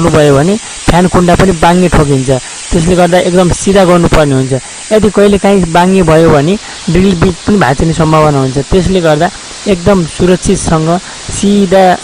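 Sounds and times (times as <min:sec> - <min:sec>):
person speaking loudly: 0:00.0 - 0:12.0.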